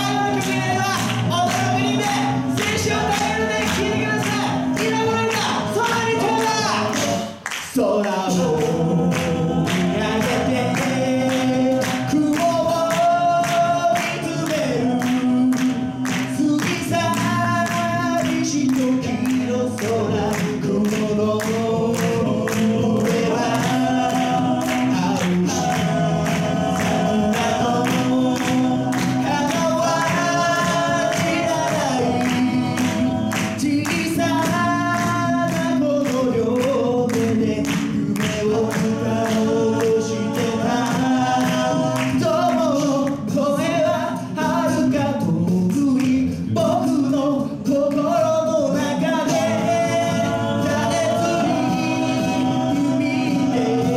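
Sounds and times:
backing vocal harmonies: 0.0s - 53.9s
male group singing a cappella: 0.0s - 53.9s
steady percussive beat: 8.5s - 53.9s.

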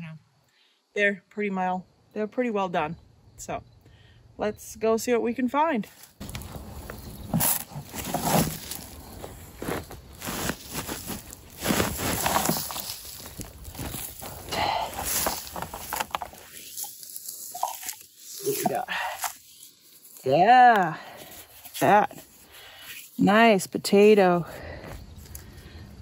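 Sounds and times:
hands digging through soil: 6.0s - 24.2s
fabric bag rustling: 6.2s - 20.3s
soil pouring into plastic barrel: 10.2s - 19.4s.

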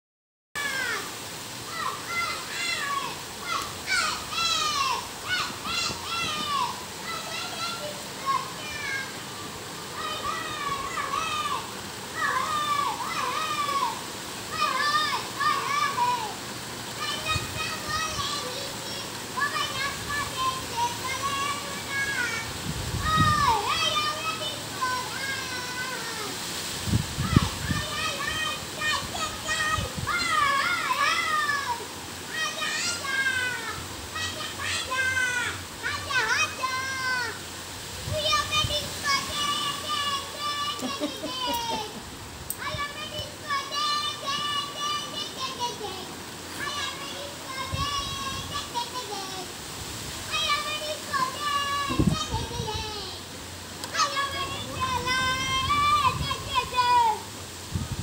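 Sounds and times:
child singing or calling out: 0.6s - 9.2s, 9.9s - 57.9s.

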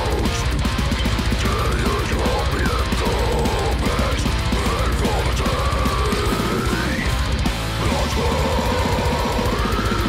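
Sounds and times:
distorted guitars: 0.0s - 10.0s
fast dense drumming: 0.0s - 10.0s.

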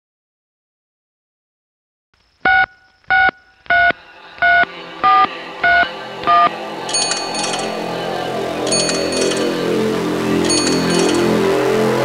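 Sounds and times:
sustained synth pad: 4.0s - 12.0s
high chiming figure: 6.9s - 11.6s.

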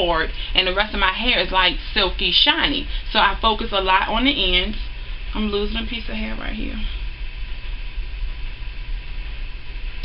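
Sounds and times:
room noise hum and hiss: 0.0s - 10.0s.

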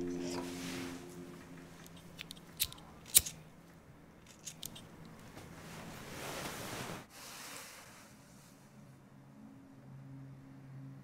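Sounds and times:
lighter clicks: 1.9s - 3.4s.

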